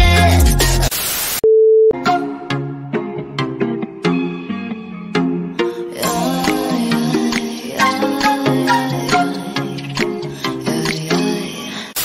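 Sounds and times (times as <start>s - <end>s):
tv static hiss: 0.9s - 1.4s
test-card beep: 1.4s - 2.0s
music with plucked notes: 2.0s - 11.1s.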